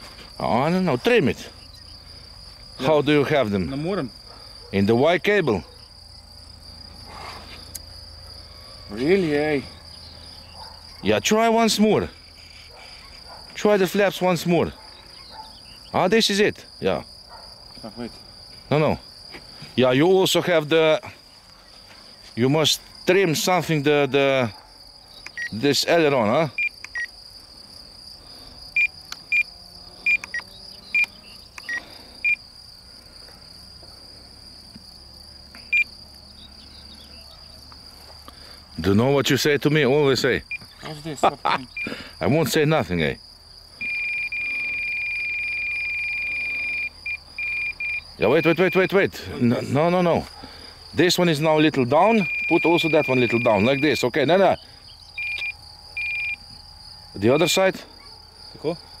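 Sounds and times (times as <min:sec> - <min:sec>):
crickets chirring: 0:00.0 - 0:59.0
short high beeps: 0:52.1 - 0:54.0, 0:55.2 - 0:56.4.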